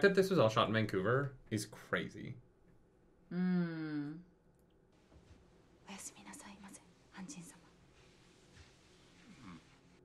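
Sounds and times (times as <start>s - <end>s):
person humming: 3.3s - 4.2s
person whispering: 5.9s - 7.8s.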